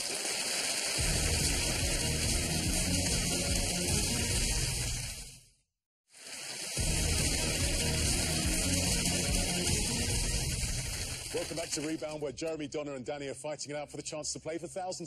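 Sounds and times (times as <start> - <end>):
game show theme music: 1.0 - 5.0, 6.8 - 12.5.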